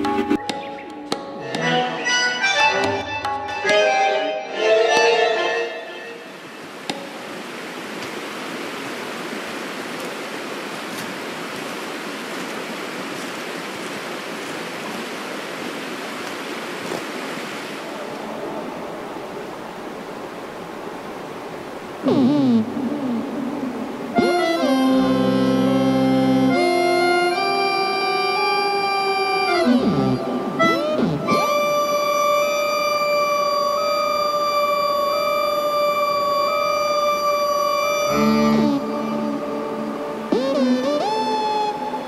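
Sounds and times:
music with plucked notes: 0.0 - 5.8, 24.2 - 27.8, 38.1 - 41.6
flowing stream water: 0.0 - 42.0.

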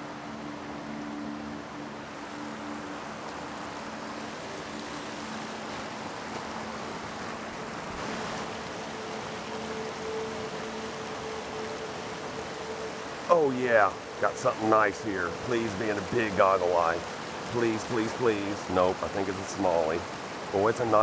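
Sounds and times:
creek water rushing over concrete: 0.0 - 21.0.

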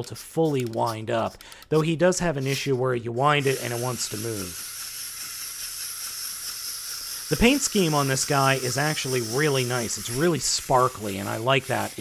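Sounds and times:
clockwork gear motor whirring: 3.3 - 12.0.

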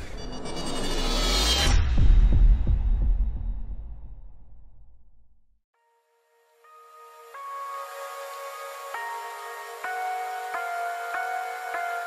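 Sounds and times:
deep bass boom: 1.7 - 5.1.

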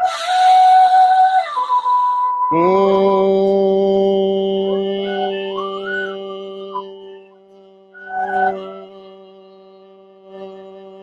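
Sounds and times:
flute music: 0.0 - 11.0
man humming on one low pitch: 2.5 - 11.0.

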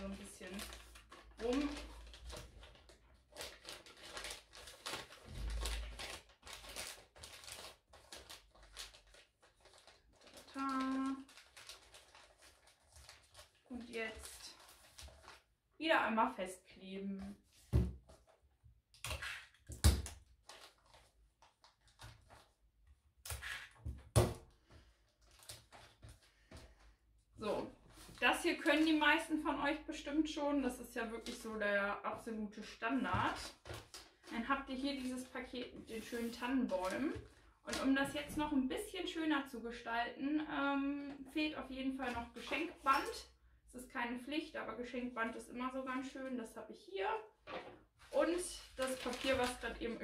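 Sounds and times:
wrapping paper rustling and crinkling: 0.0 - 15.5, 19.3 - 22.6, 24.6 - 26.8, 27.8 - 29.2, 33.1 - 38.1, 48.0 - 50.0.

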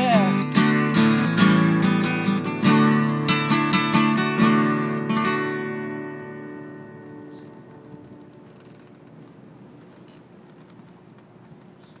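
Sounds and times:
acoustic guitar chord ringing: 0.0 - 8.5.

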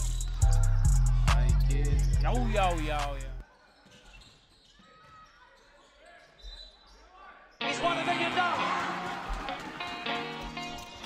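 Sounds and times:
hip-hop music: 0.0 - 3.4, 7.6 - 11.0
loud music: 0.0 - 3.4
faint sports hall game sound: 0.0 - 11.0.

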